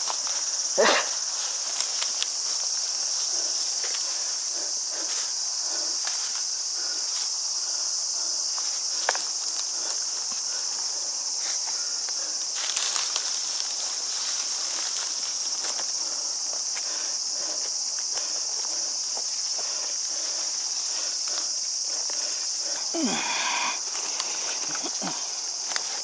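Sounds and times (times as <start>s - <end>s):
cicadas chorus: 0.0s - 26.0s
dry leaves crunching: 11.8s - 16.3s.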